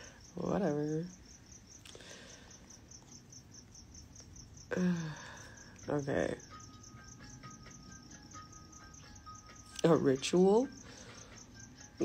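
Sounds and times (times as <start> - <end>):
faint insect chirping: 0.0 - 12.0.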